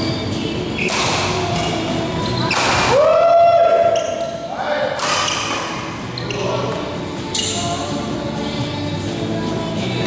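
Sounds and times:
racket hitting shuttlecock: 0:00.8 - 0:01.8, 0:02.5 - 0:03.0, 0:05.0 - 0:05.8.

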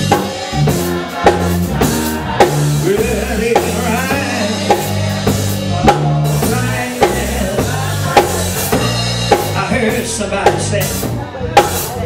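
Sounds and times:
church band playing gospel music: 0:00.0 - 0:12.0.

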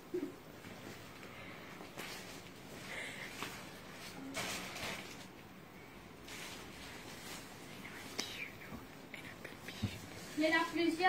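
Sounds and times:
faint whispered voice: 0:07.6 - 0:10.8.

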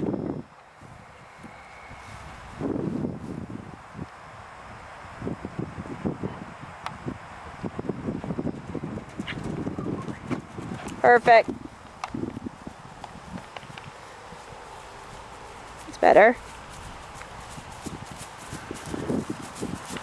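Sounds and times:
wind on microphone: 0:00.0 - 0:20.0
horse hoofbeats on grass: 0:08.2 - 0:20.0.

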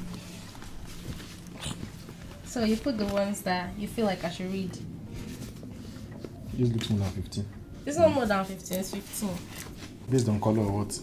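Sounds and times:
paper rustle: 0:00.0 - 0:03.5
paperback books being handled: 0:00.0 - 0:04.2, 0:08.8 - 0:10.7
low steady hum: 0:00.0 - 0:11.0.

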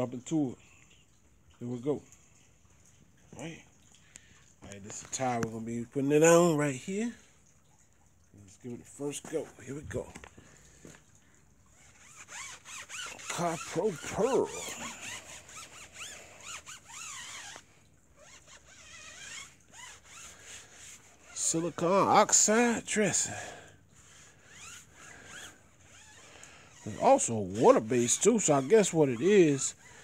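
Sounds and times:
rubber tire squeaking: 0:11.7 - 0:30.0.

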